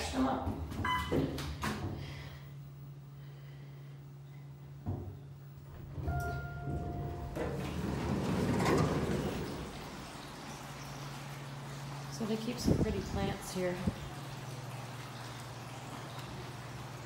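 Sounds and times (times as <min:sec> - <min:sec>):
elevator car humming: 0:04.3 - 0:17.0
elevator stopping knock: 0:04.8 - 0:10.2
elevator doors sliding open: 0:05.6 - 0:10.8.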